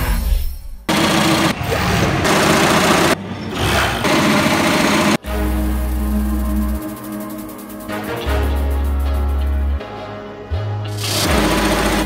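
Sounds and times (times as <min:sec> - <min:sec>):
embroidery machine stitching: 0:00.9 - 0:01.6, 0:02.2 - 0:03.2, 0:04.0 - 0:05.2, 0:11.0 - 0:12.0.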